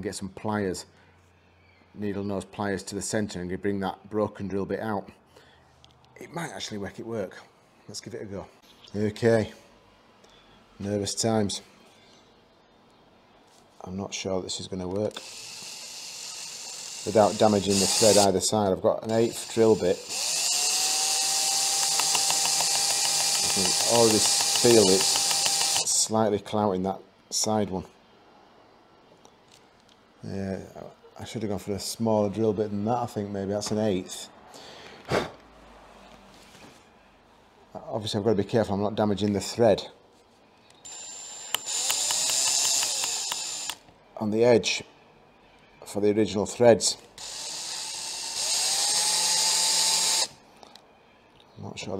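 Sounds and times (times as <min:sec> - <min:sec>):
cordless drill whirring: 0:15.1 - 0:18.4, 0:19.1 - 0:26.0, 0:40.8 - 0:43.8, 0:47.2 - 0:50.4.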